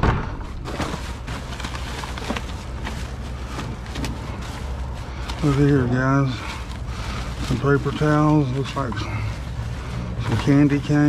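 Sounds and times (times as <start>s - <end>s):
low steady rumble: 0.0s - 11.0s
plastic bag rustling and crackling: 0.3s - 11.0s.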